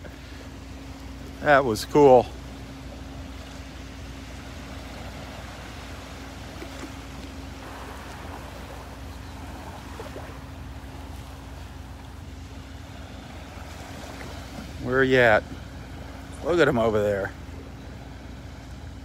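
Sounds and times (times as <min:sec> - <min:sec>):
gentle surf washing: 0:00.0 - 0:19.0.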